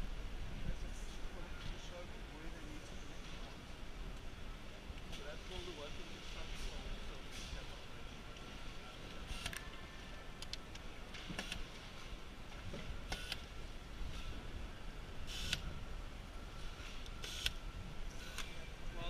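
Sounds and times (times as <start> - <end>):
factory machinery hum: 0.0 - 19.0.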